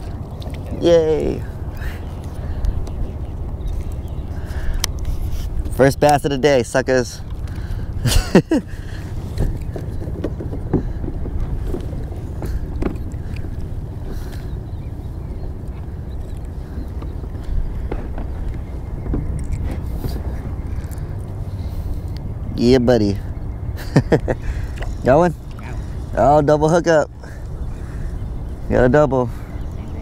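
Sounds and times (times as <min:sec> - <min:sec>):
wind buffeting microphone: 0:00.0 - 0:30.0.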